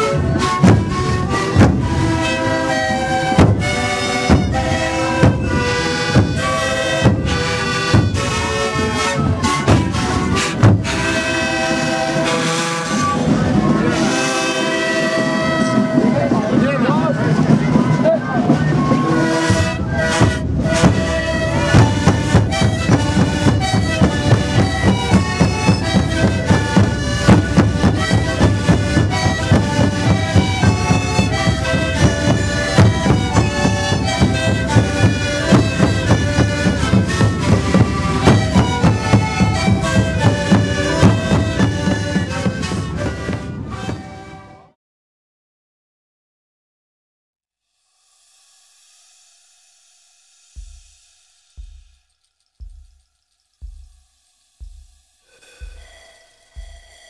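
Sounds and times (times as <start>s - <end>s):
panpipes playing melody: 0.0s - 44.8s, 54.6s - 57.0s
bass drums beating: 0.2s - 11.9s, 18.5s - 43.8s, 50.6s - 56.0s, 56.6s - 57.0s.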